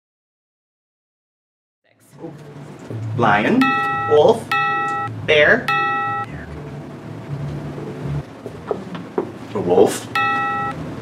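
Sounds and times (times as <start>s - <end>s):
low steady hum: 1.9s - 11.0s
electronic chime: 3.6s - 6.4s, 10.2s - 10.8s.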